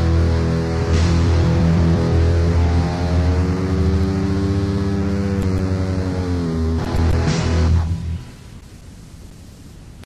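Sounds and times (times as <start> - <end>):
distorted electric guitar chord: 0.0 - 8.6
drum hit: 0.8 - 3.1.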